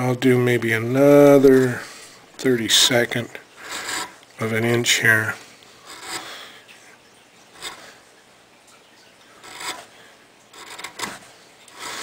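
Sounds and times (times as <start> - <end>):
carving gouge scraping through wood: 3.6 - 4.2, 5.9 - 6.3, 7.6 - 7.9, 9.4 - 9.9, 10.5 - 12.0.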